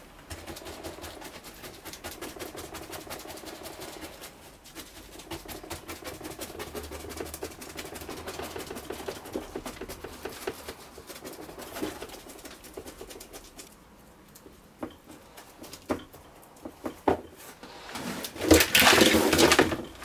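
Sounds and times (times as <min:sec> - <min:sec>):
brush tapping resin: 0:00.0 - 0:17.3.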